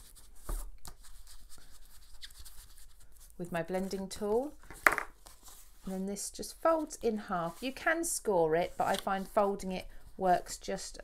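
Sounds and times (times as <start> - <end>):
scratchy brushing on cardstock: 0.0 - 3.4, 6.6 - 10.4.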